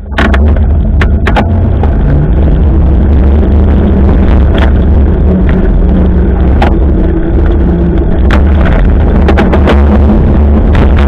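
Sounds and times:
road and tyre noise: 0.0 - 11.0
wind rumble on microphone: 0.0 - 11.0.

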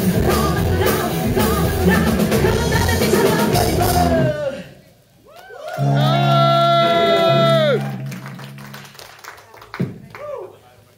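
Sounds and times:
rock band playing: 0.0 - 4.4, 5.8 - 9.0.

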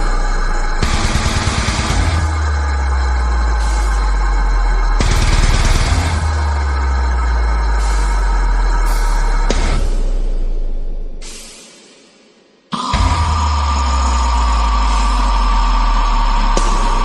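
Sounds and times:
heavy metal music: 0.0 - 12.0, 12.7 - 17.0
rapid guitar chugging: 0.8 - 3.2, 4.9 - 6.5.

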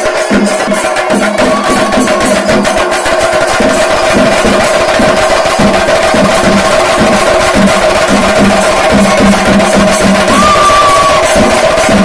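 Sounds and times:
cymbals: 0.0 - 12.0
drums in fast rhythm: 0.0 - 12.0.

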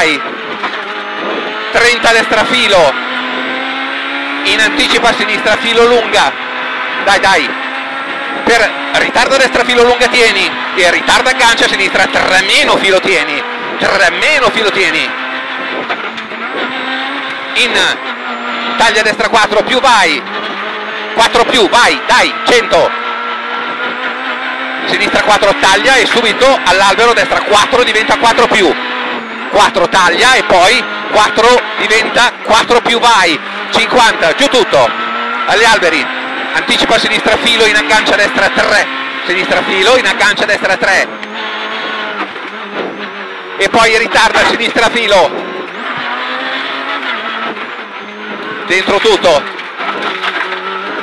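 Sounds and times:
rally car engine at high revs: 0.0 - 51.0.

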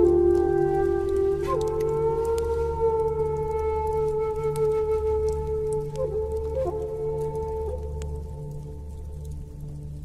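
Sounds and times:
flute holding long note: 0.0 - 9.2.

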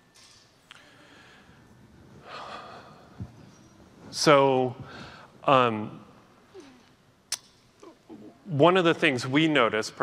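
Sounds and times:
man breathing in softly: 0.7 - 3.4, 4.8 - 5.4.

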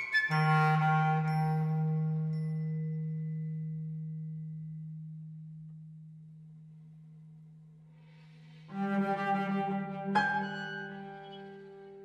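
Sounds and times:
low sustained ensemble note: 0.3 - 12.0.

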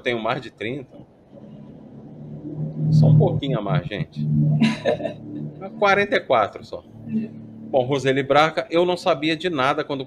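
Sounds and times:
person speaking: 0.9 - 9.2
person humming: 1.4 - 6.2.

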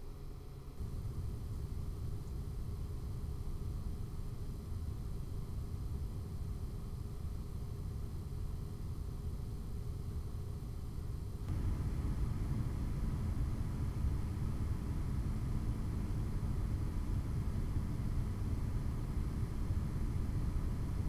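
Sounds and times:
cooling fans humming: 11.4 - 21.0.

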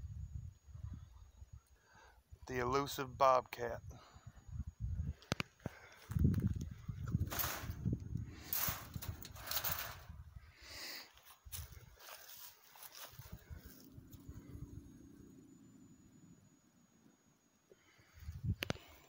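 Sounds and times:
footsteps through dry grass: 11.1 - 13.9.

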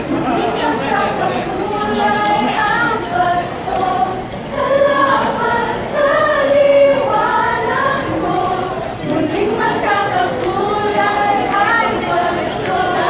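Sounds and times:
a cappella group singing: 0.0 - 13.0.

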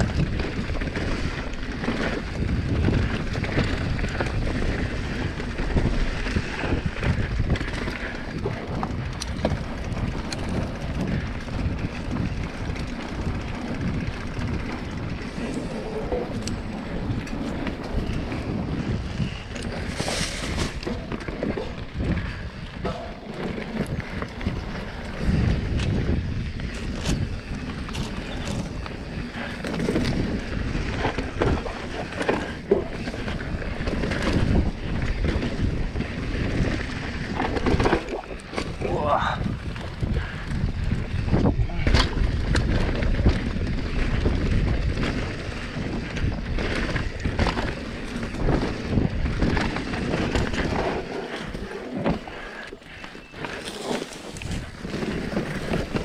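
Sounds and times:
bike knocks and rattles: 0.0 - 56.0
bike tyres rolling on dirt: 0.0 - 56.0
wind noise on microphone: 0.0 - 56.0.

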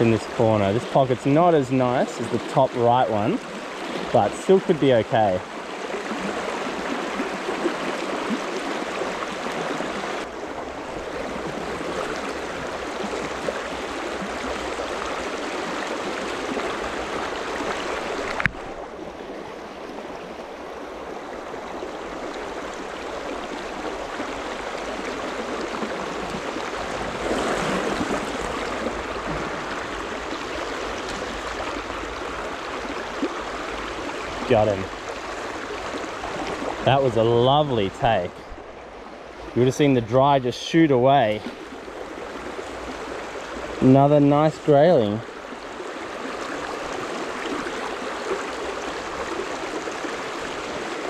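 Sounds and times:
stream running over rocks: 0.0 - 51.0.

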